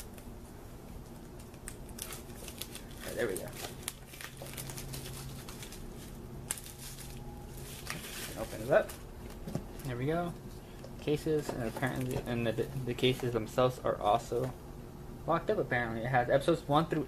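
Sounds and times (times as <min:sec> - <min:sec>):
plastic wrap crinkling and tearing: 0:01.3 - 0:09.0.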